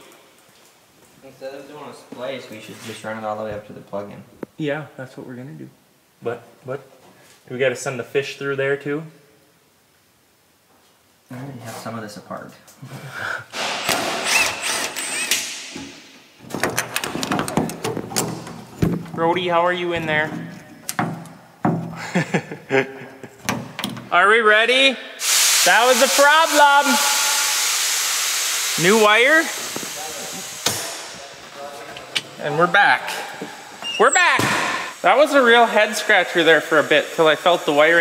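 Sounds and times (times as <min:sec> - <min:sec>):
hiss: 0:13.1 - 0:15.8, 0:25.2 - 0:31.6, 0:34.5 - 0:38.0
sharp knock: 0:13.6 - 0:14.4.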